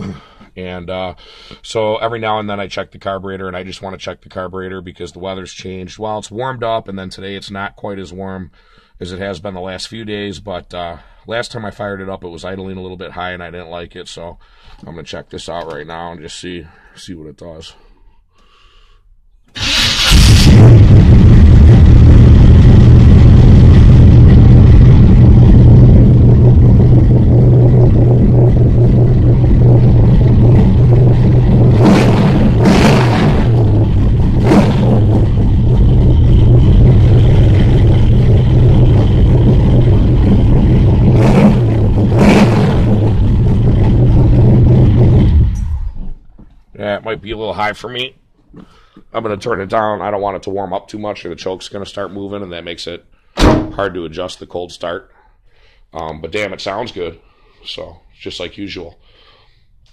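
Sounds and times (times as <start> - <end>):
car engine starting: 19.5 - 46.2
engine fast idle: 19.6 - 46.0.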